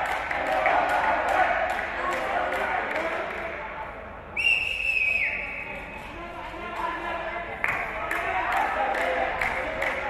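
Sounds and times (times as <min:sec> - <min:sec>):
murmur of voices: 0:00.0 - 0:10.0
shrill whistle: 0:04.4 - 0:06.1.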